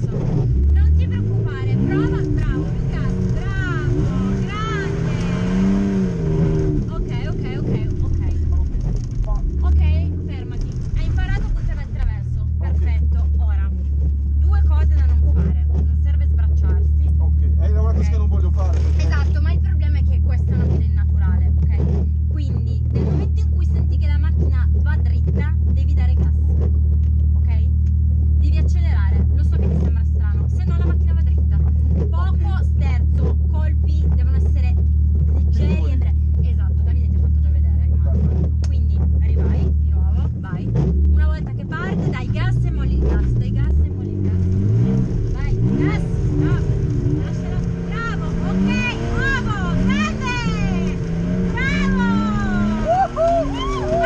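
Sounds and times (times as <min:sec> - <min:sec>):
people's voices: 0:00.0 - 0:13.8, 0:28.4 - 0:44.5, 0:45.3 - 0:54.0
car engine idling: 0:00.0 - 0:54.0.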